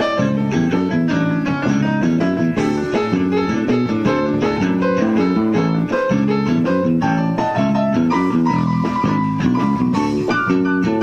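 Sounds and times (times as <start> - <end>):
electric bass: 0.0 - 11.0
guitar: 0.0 - 11.0
live blues band playing: 0.0 - 11.0.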